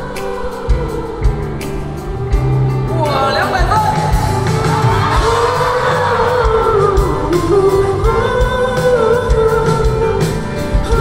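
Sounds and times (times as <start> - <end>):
live pop-rock band: 0.0 - 11.0
steady drum beat: 0.0 - 11.0
man singing: 5.1 - 11.0.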